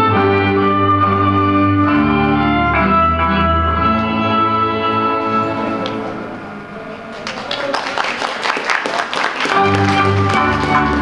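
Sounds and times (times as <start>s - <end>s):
audience clapping: 7.1s - 11.0s.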